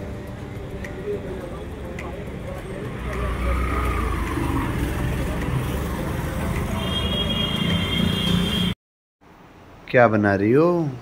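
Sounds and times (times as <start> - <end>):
background voices: 0.4 - 6.7
vehicle engine rumbling past: 1.7 - 7.9.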